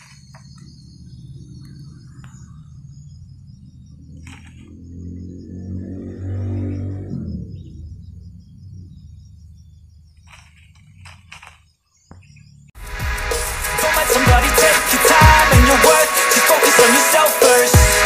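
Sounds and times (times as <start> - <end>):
insects chirring: 0.0 - 12.8
low drone: 0.6 - 10.5, 12.8 - 17.8
brief rustles: 10.2 - 11.7.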